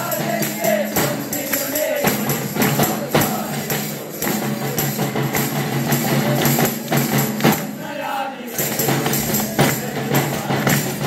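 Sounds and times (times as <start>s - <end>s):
hand claps: 0.0s - 7.8s, 8.5s - 11.0s
jingling tambourine: 0.0s - 11.0s
men carolling: 0.0s - 11.0s
side drum beat: 0.0s - 11.0s.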